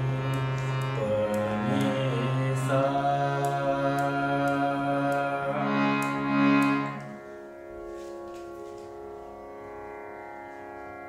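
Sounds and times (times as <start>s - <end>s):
harmonium playing slow melody: 0.0s - 11.0s.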